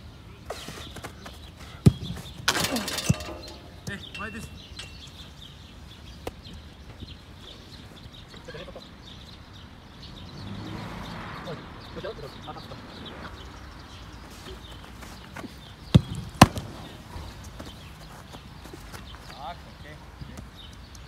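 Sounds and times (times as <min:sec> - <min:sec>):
bird chirps: 0:00.6 - 0:21.0
football kicked thud: 0:01.8 - 0:04.0, 0:15.9 - 0:16.9
ball hitting goal: 0:01.9 - 0:05.0.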